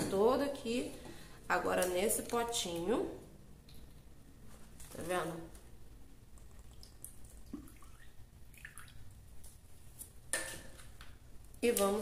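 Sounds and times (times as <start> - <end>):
liquid trickling and dripping: 6.4 - 9.6.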